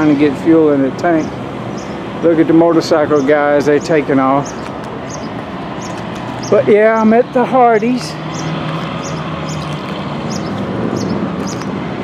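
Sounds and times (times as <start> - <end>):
motor and traffic noise: 0.0 - 12.0.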